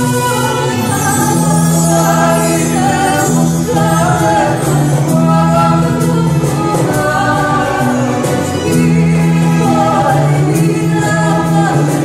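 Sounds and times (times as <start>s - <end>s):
choir singing long held notes: 0.7s - 12.0s.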